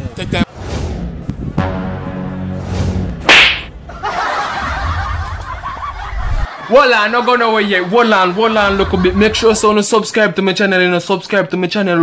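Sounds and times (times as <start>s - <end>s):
whip crack: 3.2s - 3.7s.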